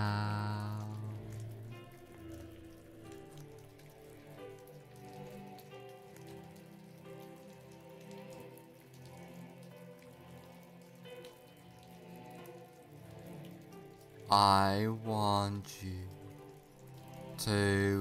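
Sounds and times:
ambient music of soft held tones: 0.0 - 18.0
rain droplets ticking: 0.0 - 18.0.

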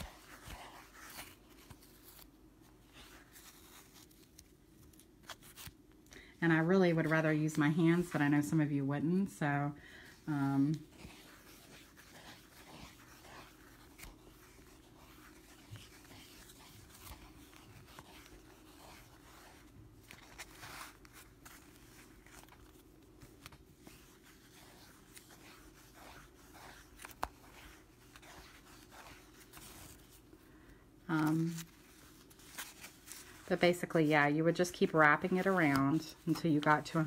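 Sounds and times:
yarn swishing and rustling: 0.0 - 4.2, 7.1 - 30.2.

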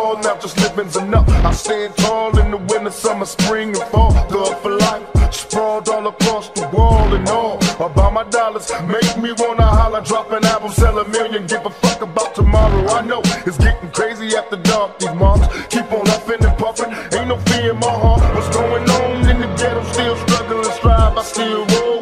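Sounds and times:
rapping over hip hop beat: 0.0 - 22.0.

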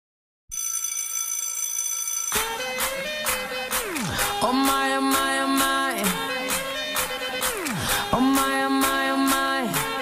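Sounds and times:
bright bell-like ringing tone: 0.5 - 2.6.

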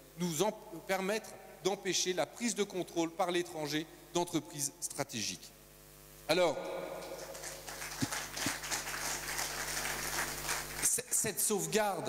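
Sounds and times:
audience applauding: 7.0 - 10.9.

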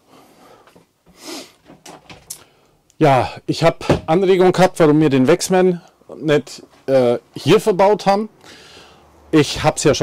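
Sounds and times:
light clicks and knocks: 1.6 - 2.5
soft breath through nose: 8.4 - 9.1.

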